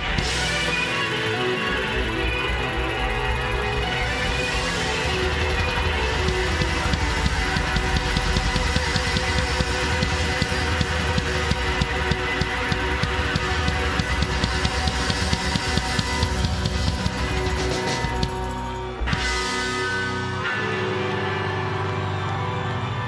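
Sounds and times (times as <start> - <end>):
electric guitar: 0.0 - 23.0
drum kit with crashing cymbals: 3.8 - 20.4.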